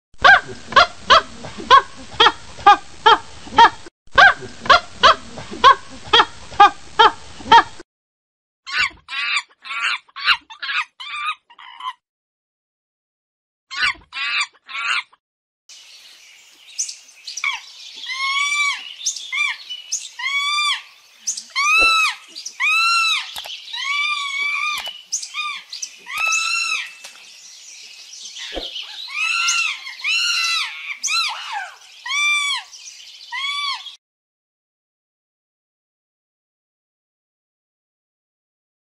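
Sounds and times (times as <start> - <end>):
monkey squealing calls: 8.7 - 12.0, 13.7 - 15.1, 17.4 - 27.1, 28.4 - 32.7, 33.3 - 34.0.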